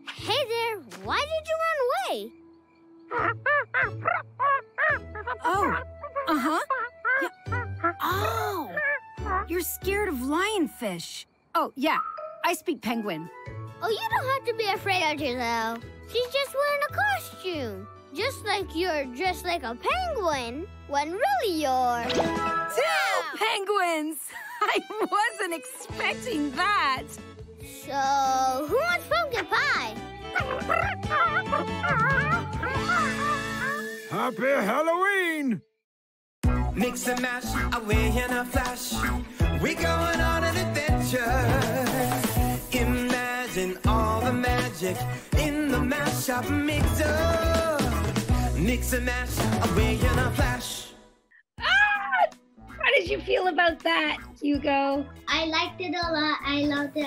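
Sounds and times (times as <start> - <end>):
faint background music: 0.0 - 35.3, 51.6 - 57.0
high wavering cartoon calls: 3.1 - 9.6, 29.3 - 34.2
cartoon penguin honking calls: 30.2 - 33.9.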